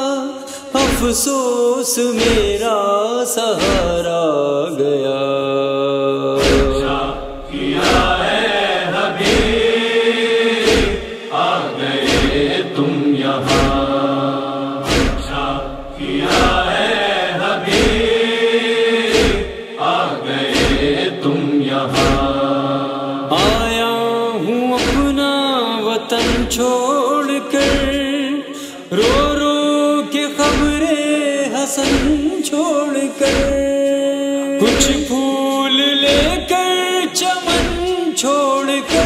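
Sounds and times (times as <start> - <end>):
rhythmic chest-beating thumps: 0.8 - 1.2, 2.2 - 2.6, 3.6 - 4.1, 6.4 - 9.9, 10.6 - 14.2, 14.8 - 18.4, 19.1 - 19.7, 20.4 - 21.1, 21.9 - 22.6, 23.4 - 23.8, 24.8 - 25.2, 26.2 - 26.6, 27.6 - 28.1, 29.0 - 29.5, 30.4 - 30.9, 31.8 - 32.3, 33.2 - 33.7, 34.7 - 35.2, 36.0 - 36.5, 37.5 - 37.9
men's voices chanting: 6.2 - 23.9, 24.8 - 25.2, 26.2 - 26.6, 27.6 - 28.1, 29.0 - 29.4, 31.8 - 32.3, 33.2 - 33.6, 34.6 - 36.5, 37.5 - 37.9.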